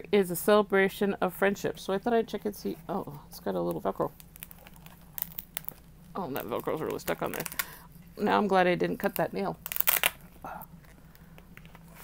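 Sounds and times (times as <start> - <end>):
velcro crackling rasps: 4.2 - 7.8, 9.6 - 10.9.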